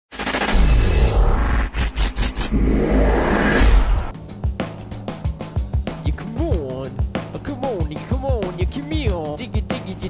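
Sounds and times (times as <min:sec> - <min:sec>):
stutter of sharp hits: 0:00.1 - 0:04.2
rising swell: 0:00.9 - 0:04.2.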